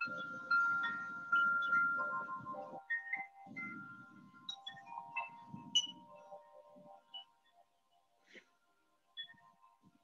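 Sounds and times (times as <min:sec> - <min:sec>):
wind chime ringing: 0:00.0 - 0:07.6.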